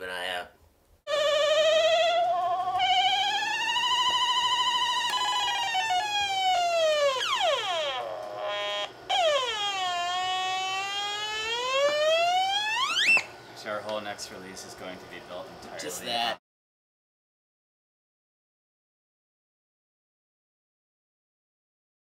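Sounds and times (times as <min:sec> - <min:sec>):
synthesizer tone swooping: 0:01.1 - 0:13.3.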